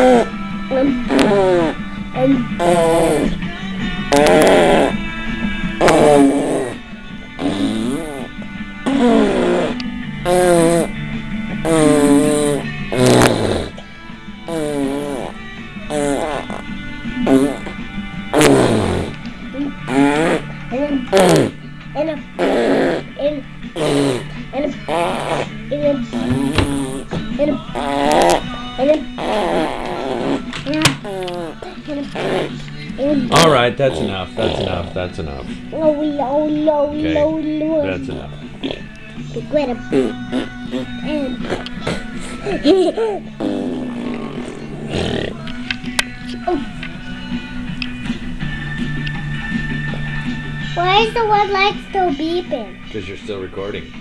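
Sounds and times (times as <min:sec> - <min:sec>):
girl making sing-song noises: 0:00.0 - 0:03.4, 0:22.0 - 0:23.5, 0:24.5 - 0:33.3, 0:35.7 - 0:37.8, 0:39.3 - 0:43.2, 0:46.4 - 0:46.9, 0:50.7 - 0:52.7
silly mouth noises: 0:00.0 - 0:03.4, 0:04.1 - 0:05.0, 0:05.8 - 0:06.8, 0:07.4 - 0:10.9, 0:11.6 - 0:13.8, 0:14.5 - 0:21.6, 0:22.4 - 0:34.8, 0:38.2 - 0:46.7.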